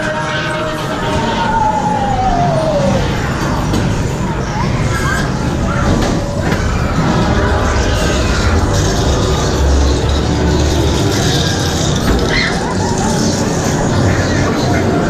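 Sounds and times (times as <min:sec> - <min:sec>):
haunted soundtrack music: 0:00.0 - 0:15.0
deep low rumble: 0:01.0 - 0:14.3.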